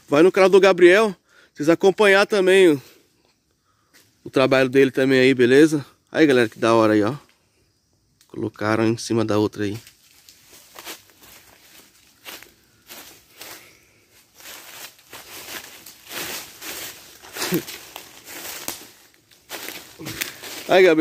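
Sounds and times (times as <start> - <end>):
footsteps on dry leaves and rocks: 9.9 - 21.0.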